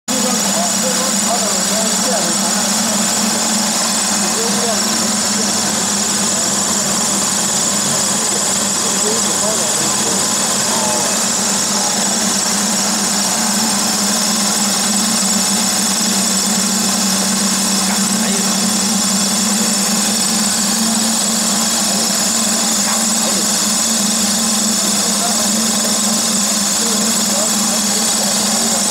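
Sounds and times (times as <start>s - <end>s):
feed extruder running: 0.1s - 28.9s.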